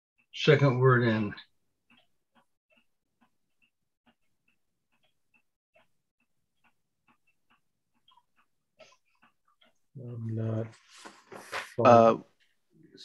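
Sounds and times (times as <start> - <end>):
soft ticks: 1.4 - 10.2.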